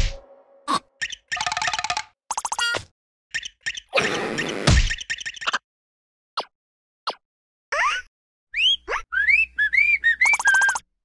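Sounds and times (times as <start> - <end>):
cartoon whistling tune: 8.5 - 10.8.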